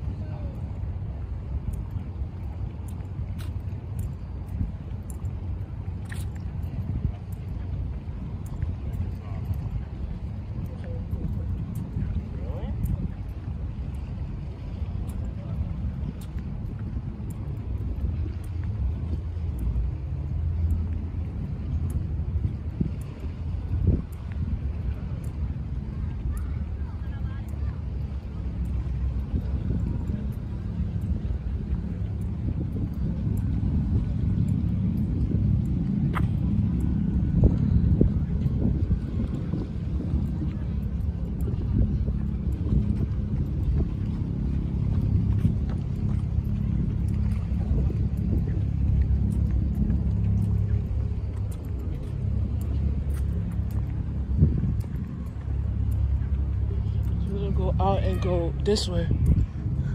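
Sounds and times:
wind buffeting microphone: 0:00.0 - 0:59.9
faint regular ticks: 0:01.6 - 0:57.3.

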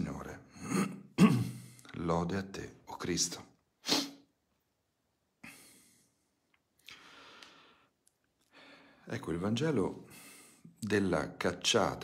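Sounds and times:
man breathing: 0:05.4 - 0:09.1, 0:10.0 - 0:10.8.

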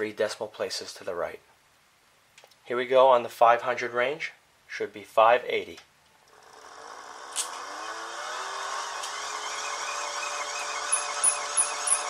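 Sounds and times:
hand-cranked generator whine: 0:06.3 - 0:12.0.

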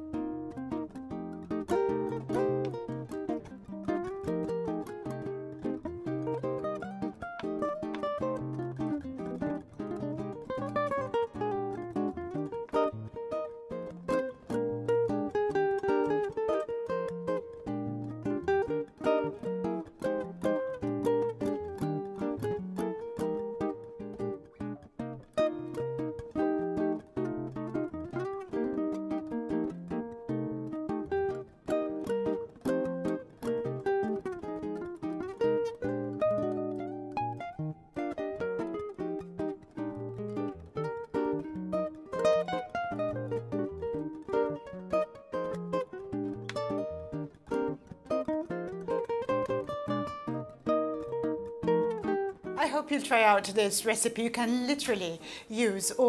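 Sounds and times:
plucked acoustic guitar: 0:00.0 - 0:56.0.

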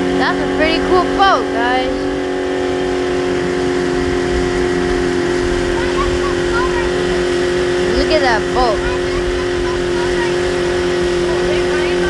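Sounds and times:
outboard motor running: 0:00.0 - 0:12.0
wind on microphone: 0:00.0 - 0:12.0.

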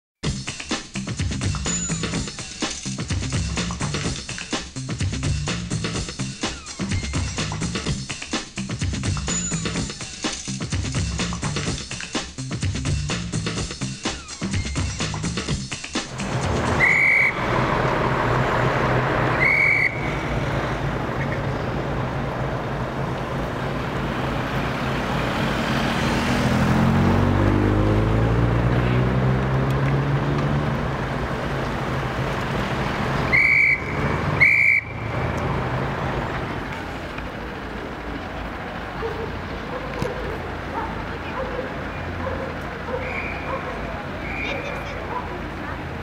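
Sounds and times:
vehicle engines running: 0:01.3 - 0:46.0
engine accelerating: 0:14.7 - 0:46.0.

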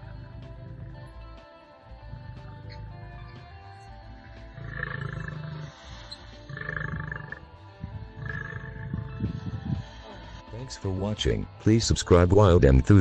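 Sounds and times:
lion roaring: 0:00.0 - 0:01.2, 0:02.0 - 0:03.6, 0:04.4 - 0:07.5, 0:08.1 - 0:09.4
background music: 0:00.0 - 0:13.0.

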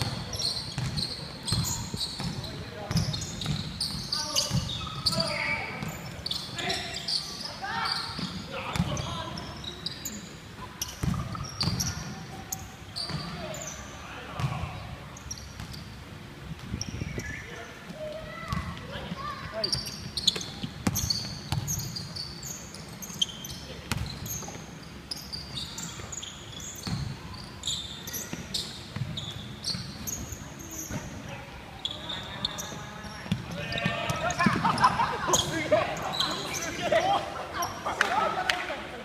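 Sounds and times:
sneakers squeaking: 0:00.0 - 0:38.2
players shouting: 0:33.5 - 0:38.8.

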